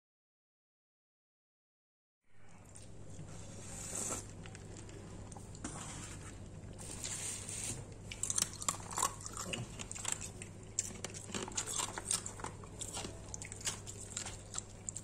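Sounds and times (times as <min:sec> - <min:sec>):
crisp batter crackling: 0:03.4 - 0:15.0.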